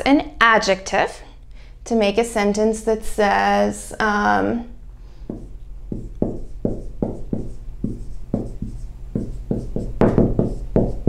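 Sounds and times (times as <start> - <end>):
marker squeaking on whiteboard: 5.4 - 11.0.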